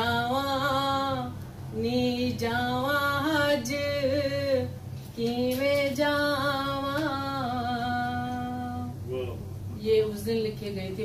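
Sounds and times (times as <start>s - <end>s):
woman singing unaccompanied: 0.0s - 9.0s, 9.8s - 11.0s.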